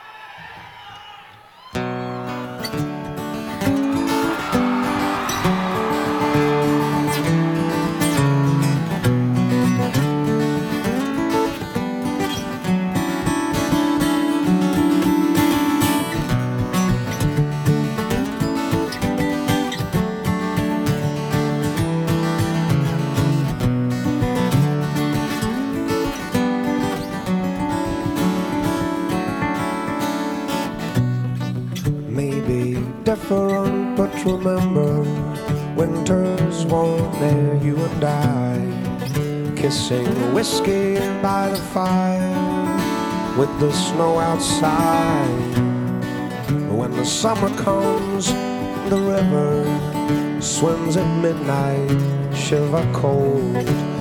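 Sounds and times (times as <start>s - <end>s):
acoustic guitars playing: 1.6s - 54.0s.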